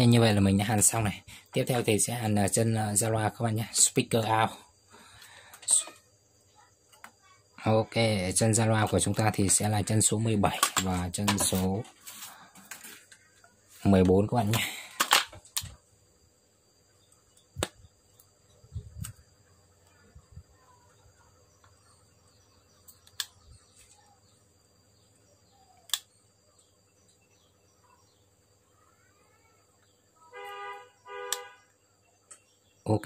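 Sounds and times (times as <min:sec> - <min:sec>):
clicks and taps from wires: 0:06.9 - 0:07.2, 0:10.5 - 0:11.6, 0:12.6 - 0:15.8.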